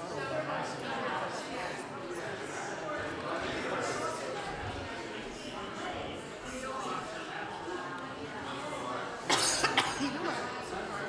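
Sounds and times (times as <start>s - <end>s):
audience murmur: 0.0s - 11.0s
person coughing: 9.3s - 10.3s.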